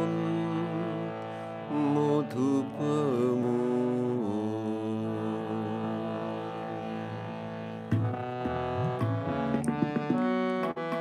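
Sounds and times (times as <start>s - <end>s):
harmonium chord: 0.0s - 11.0s.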